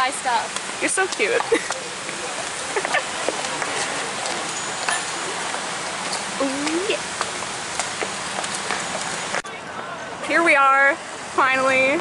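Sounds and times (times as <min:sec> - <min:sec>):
outdoor hiss: 0:00.0 - 0:09.4, 0:10.2 - 0:12.0.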